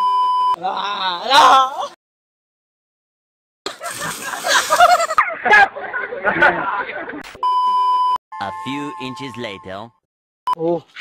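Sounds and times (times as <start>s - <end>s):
censor bleep: 0.0s - 0.6s, 7.4s - 10.6s
person narrating: 8.4s - 10.0s.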